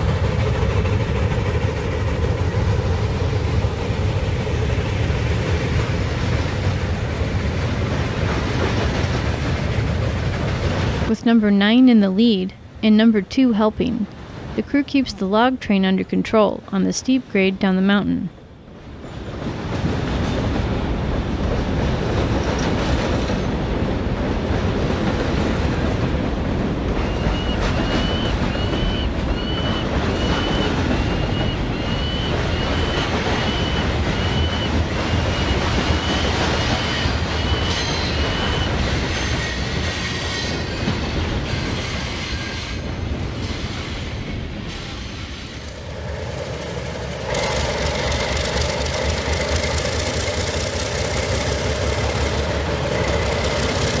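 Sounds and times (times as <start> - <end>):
model train rolling with squeak: 27.0 - 45.7.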